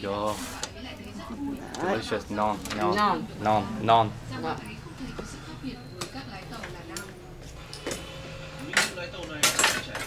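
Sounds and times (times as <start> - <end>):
utensils clinking against dishes: 5.2 - 10.0.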